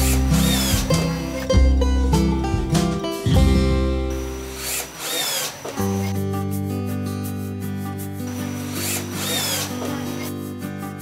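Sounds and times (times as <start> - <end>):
cordless drill driving screw: 0.0 - 1.4, 4.2 - 6.1, 8.3 - 10.3.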